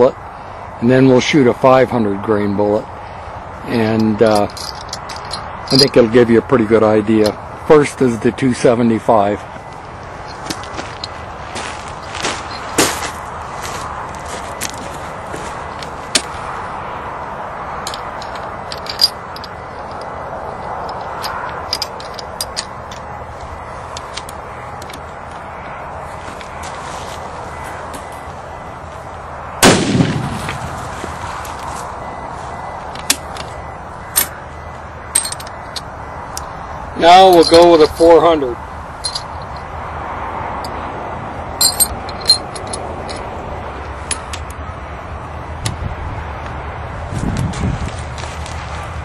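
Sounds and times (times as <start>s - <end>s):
rifle gunshot: 29.6s - 30.6s.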